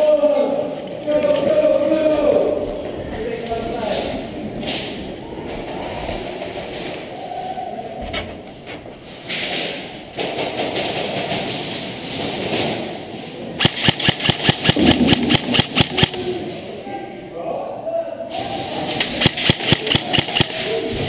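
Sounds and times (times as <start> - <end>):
airsoft gun firing rapidly: 13.6 - 16.2, 19.0 - 20.9.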